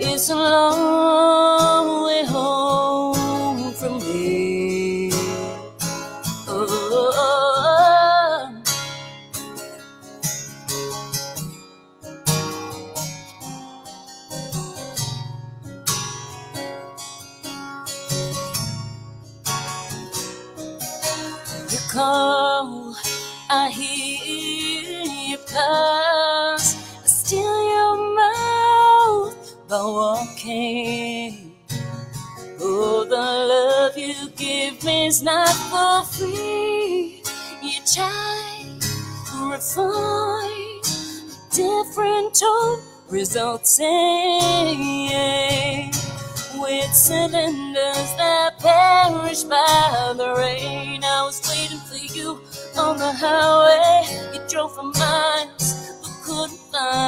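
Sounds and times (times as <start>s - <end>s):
woman singing: 0.0s - 9.0s, 21.0s - 57.0s
acoustic guitar: 0.0s - 57.0s.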